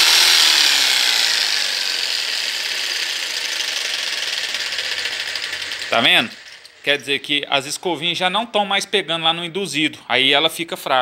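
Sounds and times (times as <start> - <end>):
jigsaw motor running: 0.0 - 7.1.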